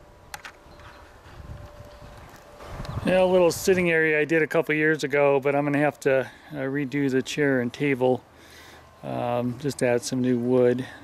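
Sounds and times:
faint steady high tone: 0.7 - 11.0.

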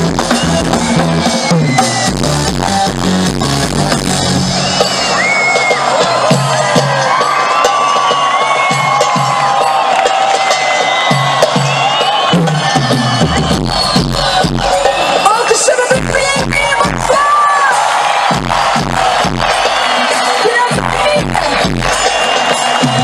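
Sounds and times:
deep bass beat: 0.0 - 4.8, 12.6 - 14.9, 18.0 - 19.6
band music: 0.0 - 23.0
crowd cheering and whistling: 0.0 - 23.0.

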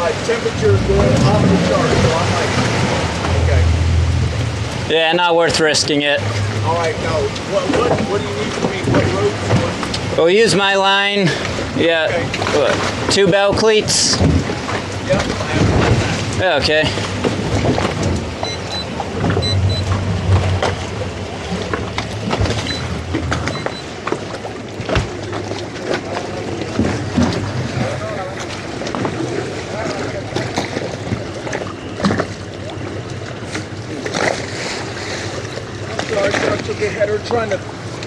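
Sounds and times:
voices talking: 0.0 - 14.2, 25.7 - 32.6
outboard engines idling: 0.0 - 38.0
water noise: 0.0 - 38.0
wind: 0.0 - 38.0.

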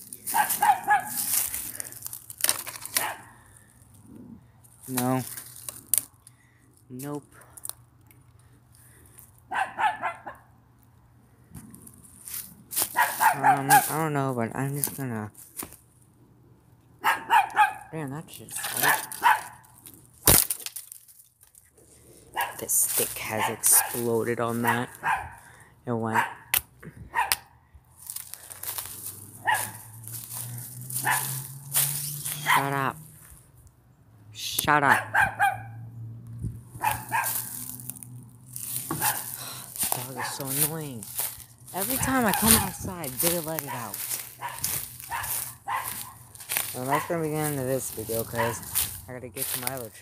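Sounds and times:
dog barking: 0.3 - 1.3, 3.0 - 3.4, 9.5 - 10.5, 12.9 - 13.9, 17.0 - 18.0, 18.7 - 19.6, 22.3 - 22.6, 23.3 - 25.5, 26.1 - 26.5, 27.1 - 27.5, 29.4 - 29.9, 31.0 - 31.5, 32.3 - 32.8, 34.8 - 35.9, 36.8 - 37.6, 39.0 - 39.4, 43.7 - 47.2, 48.3 - 48.8
wooden stick snapping: 1.4 - 3.2, 4.9 - 6.3, 18.9 - 21.6, 26.5 - 26.7.

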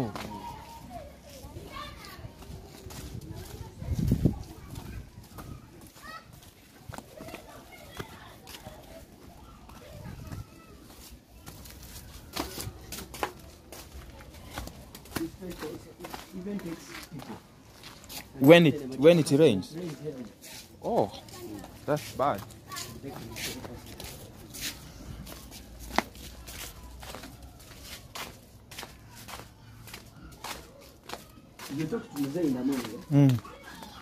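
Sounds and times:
children playing: 0.0 - 34.0.

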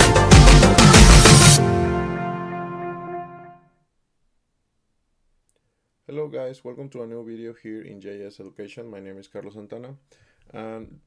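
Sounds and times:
faint click: 5.4 - 5.7.

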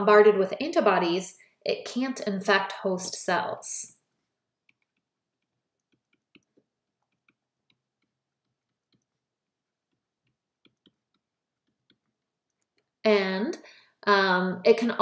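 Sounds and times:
stylus tapping on tablet screen: 4.5 - 13.0.

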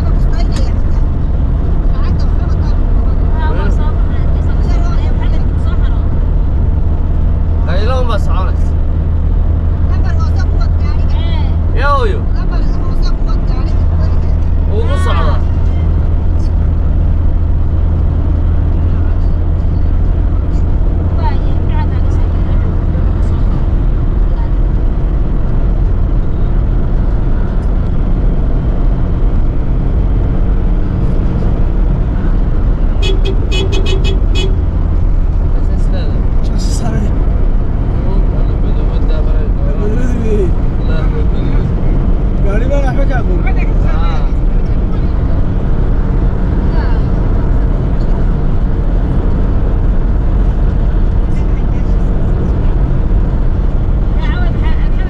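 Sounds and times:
voices: 0.0 - 6.3, 9.9 - 16.7, 18.6 - 25.1, 35.4 - 45.8, 46.6 - 47.4, 54.0 - 55.0
car engine and tyre drone: 0.0 - 55.0.

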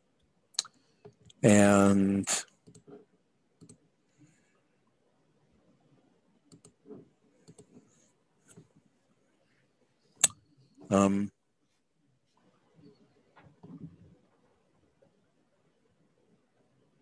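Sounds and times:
faint clicks and taps: 2.5 - 3.8, 6.5 - 8.9.

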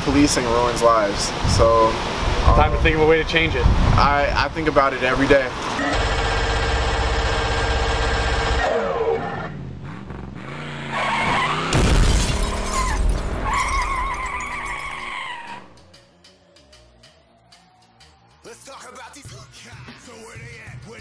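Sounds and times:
engine-like drone winding down: 5.7 - 11.8, 15.5 - 19.2
glass shattering crash: 11.7 - 15.1.

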